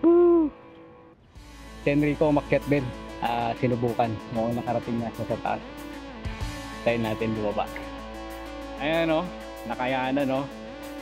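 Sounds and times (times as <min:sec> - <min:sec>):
short hoot: 0:00.0 - 0:00.7
faint background music: 0:00.0 - 0:11.0
man's voice: 0:01.9 - 0:05.7, 0:06.7 - 0:07.8.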